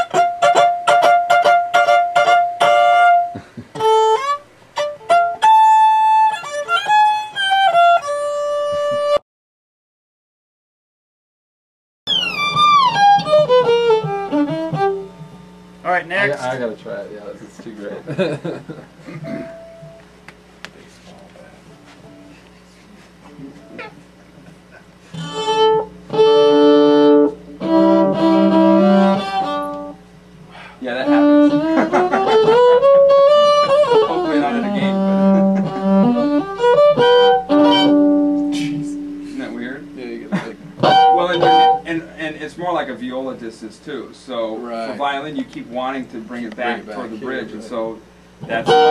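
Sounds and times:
electric violin bowed run: 0.0s - 9.2s, 12.1s - 15.5s, 25.1s - 30.0s, 30.8s - 42.1s, 48.4s - 48.9s.

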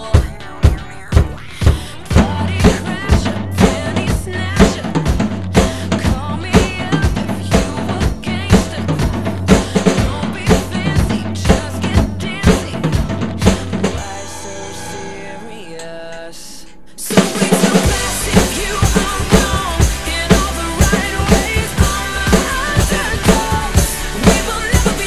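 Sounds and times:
drum kit rock beat: 0.0s - 25.0s
pop-rock recording: 0.0s - 25.0s.

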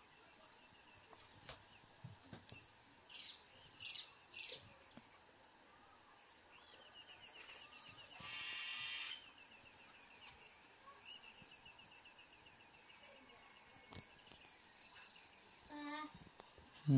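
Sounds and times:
birds chirping: 0.0s - 16.9s
loud bird call: 7.7s - 9.4s.

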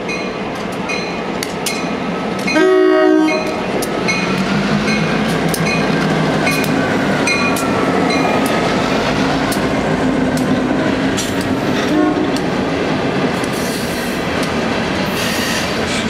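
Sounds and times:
diesel locomotive engines whining: 0.0s - 16.0s
train horn blast: 2.5s - 3.7s, 11.8s - 12.5s
wheels clicking over rail joints: 3.2s - 16.0s.

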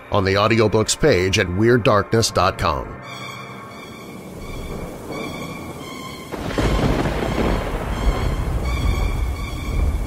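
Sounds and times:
music of held tones: 0.0s - 9.4s
deep rumble: 3.2s - 10.0s.

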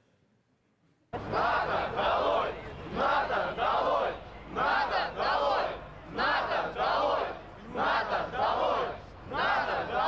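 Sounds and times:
crowd chanting in unison: 1.2s - 10.0s.

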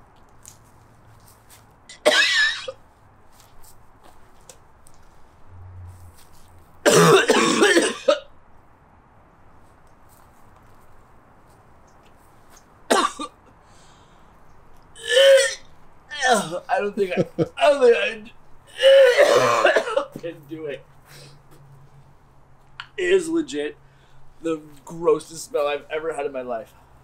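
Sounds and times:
man coughing: 1.9s - 2.7s, 6.8s - 8.2s, 12.9s - 13.3s, 15.0s - 15.6s, 16.2s - 17.5s, 18.8s - 20.2s.

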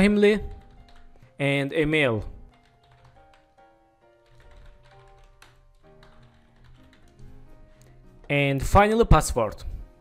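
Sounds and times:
computer keyboard typing: 0.0s - 1.4s, 2.4s - 8.3s
quiet background music: 0.0s - 10.0s.

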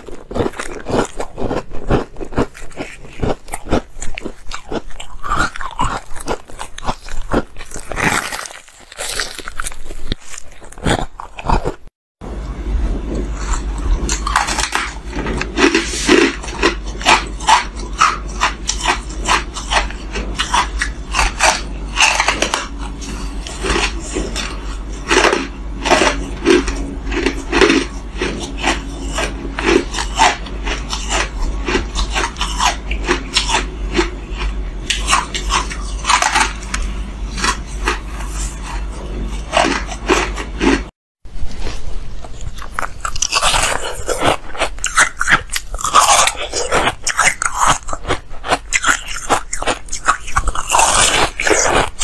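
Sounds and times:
ice being chewed: 0.0s - 11.9s, 13.1s - 52.0s
steady low hum: 0.0s - 52.0s.

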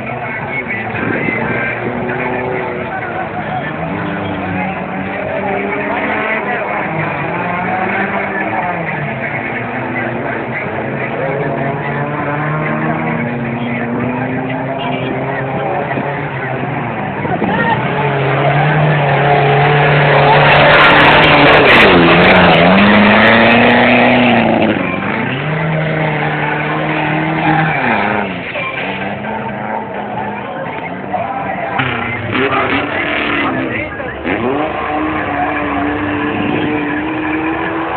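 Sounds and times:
crowd voices: 0.0s - 37.9s
engine revving under load: 0.0s - 37.9s.

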